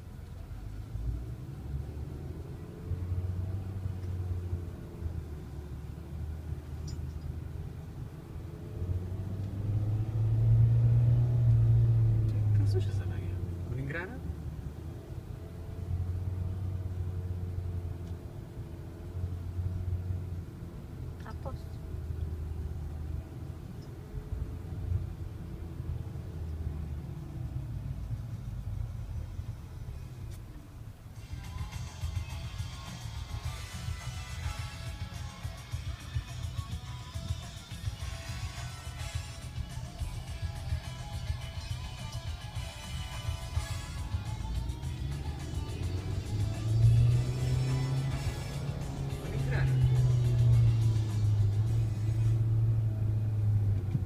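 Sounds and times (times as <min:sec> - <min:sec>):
low rumble inside car: 0:00.0 - 0:54.0
music with voices: 0:31.2 - 0:52.4.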